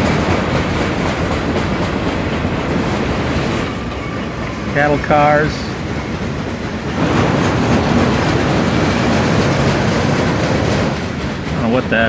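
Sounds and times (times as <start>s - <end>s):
train wheels on rails: 0.0s - 12.0s.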